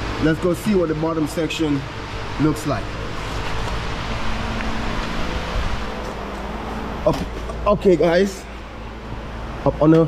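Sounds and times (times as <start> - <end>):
continuous hiss: 0.0 - 10.0
low even hum: 0.0 - 10.0.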